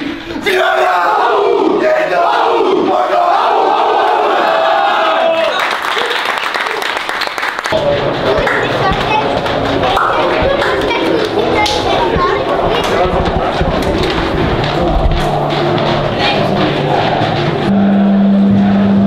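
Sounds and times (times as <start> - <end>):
men shouting battle cry: 0.4 - 5.5
chatter: 7.7 - 19.0
low rumble: 7.8 - 19.0.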